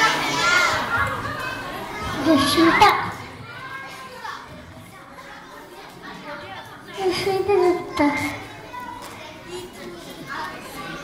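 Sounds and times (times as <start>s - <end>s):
faint children's voices chattering: 0.0s - 11.0s.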